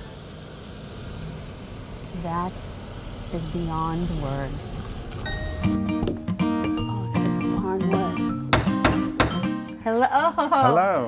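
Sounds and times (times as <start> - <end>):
quiet car engine: 0.0 - 6.3.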